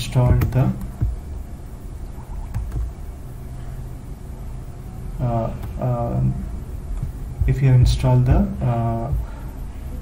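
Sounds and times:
low steady background rumble: 0.0s - 10.0s.

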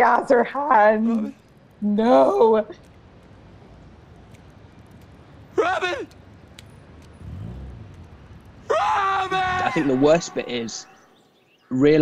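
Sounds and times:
faint street background noise: 0.0s - 12.0s.

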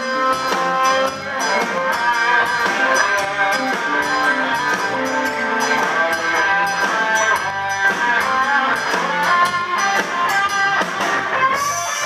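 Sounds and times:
bending electric guitar line: 0.0s - 12.0s
blues-rock band playing: 0.0s - 12.0s.

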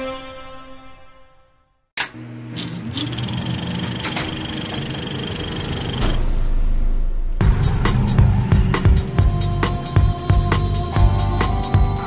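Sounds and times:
motor-like hum: 2.0s - 6.2s.

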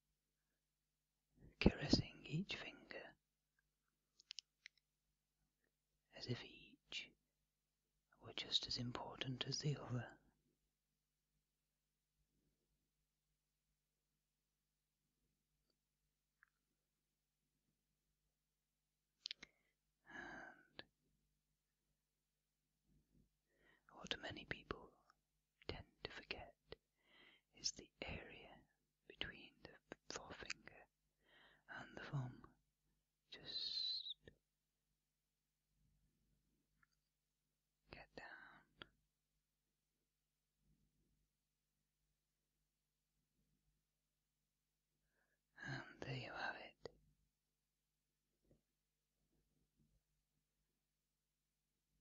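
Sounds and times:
person whispering: 1.4s - 3.2s, 6.1s - 7.2s, 8.2s - 10.4s, 20.1s - 20.9s, 23.9s - 26.8s, 27.5s - 30.9s, 31.6s - 32.6s, 33.3s - 34.4s, 37.9s - 39.0s, 45.6s - 47.0s.

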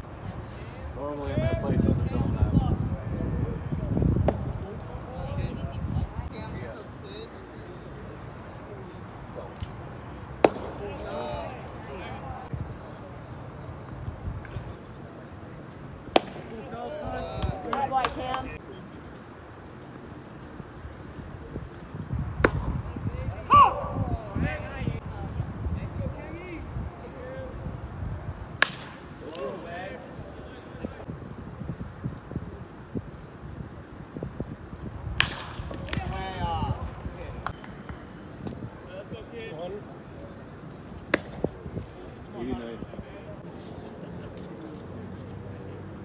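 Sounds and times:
baseball popping into leather mitt: 10.4s - 11.1s, 16.1s - 16.5s, 28.6s - 29.0s, 35.2s - 36.1s, 41.1s - 41.5s.

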